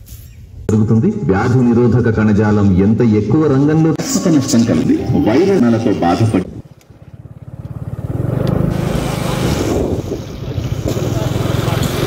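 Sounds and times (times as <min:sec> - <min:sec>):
motorcycle engine running: 0:06.5 - 0:12.0.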